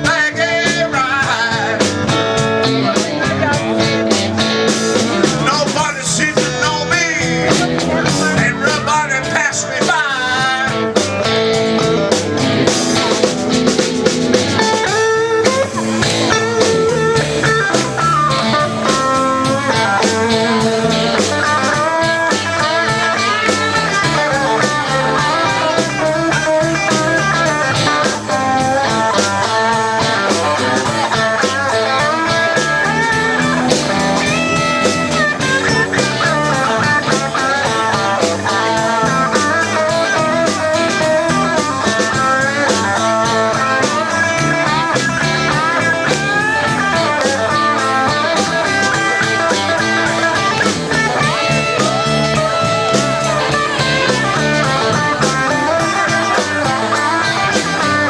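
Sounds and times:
drum kit: 0.0s - 58.0s
electric bass: 0.0s - 58.0s
lead electric guitar: 0.0s - 58.0s
rhythm guitar: 0.0s - 58.0s.

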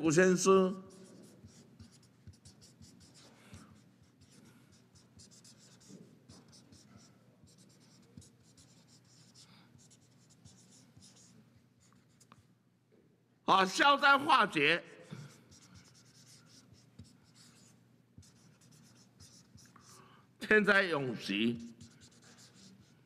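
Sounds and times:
marker scratching on paper: 0.9s - 12.5s, 15.1s - 20.0s, 21.2s - 23.0s.

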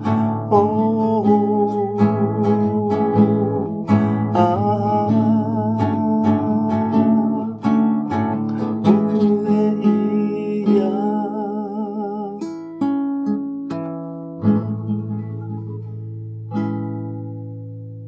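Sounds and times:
man singing wordlessly: 0.0s - 12.7s
acoustic guitar strumming: 0.0s - 18.0s.

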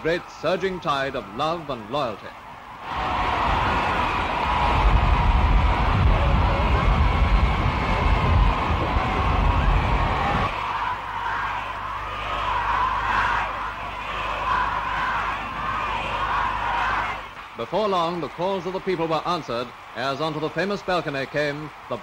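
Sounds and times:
crowd cheering and shouting: 0.0s - 22.0s.

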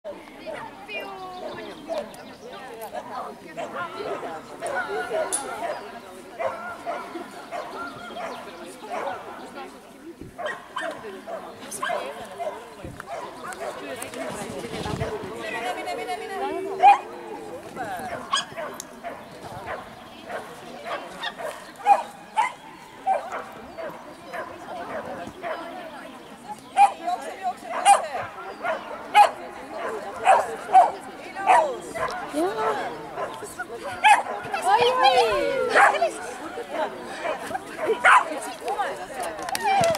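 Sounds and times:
dog barking: 6.4s - 9.2s, 10.4s - 13.8s, 18.1s - 25.6s, 27.7s - 33.4s, 34.0s - 34.4s, 35.7s - 36.0s, 37.2s - 38.3s.

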